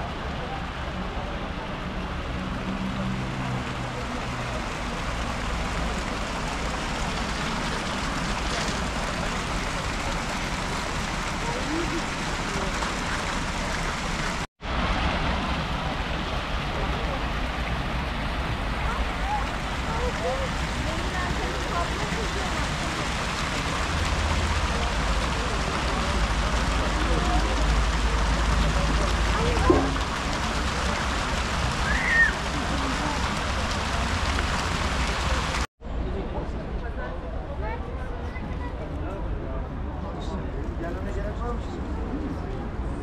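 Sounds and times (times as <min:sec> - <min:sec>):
crowd chattering: 0:00.0 - 0:14.5, 0:16.6 - 0:43.0
fountain jets splashing into pool: 0:00.0 - 0:43.0.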